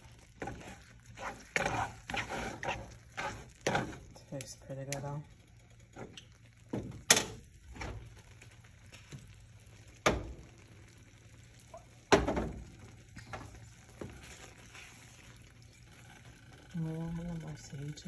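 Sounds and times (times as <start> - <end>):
water pouring into a pan: 5.4 - 18.0.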